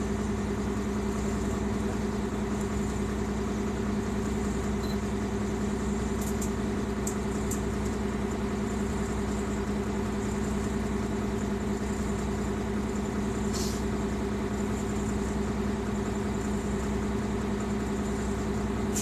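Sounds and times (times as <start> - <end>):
bus engine idling: 0.0 - 19.0.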